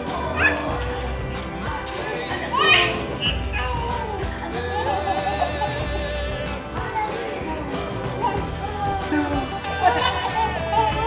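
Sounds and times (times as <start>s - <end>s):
background music: 0.0s - 11.0s
baby squealing: 0.3s - 0.8s, 2.5s - 5.9s, 6.9s - 11.0s.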